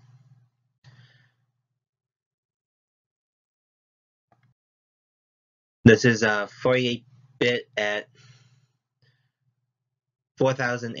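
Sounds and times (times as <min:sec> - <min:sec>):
faint breaths: 0:00.0 - 0:01.5, 0:08.1 - 0:09.5.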